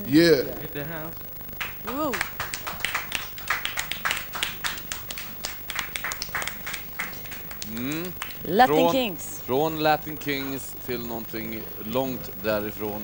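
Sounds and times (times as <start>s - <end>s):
small group clapping: 1.6s - 9.1s.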